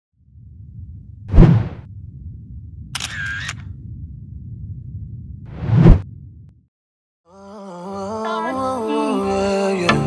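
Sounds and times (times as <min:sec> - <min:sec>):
low rumbling drone: 0:00.2 - 0:06.6.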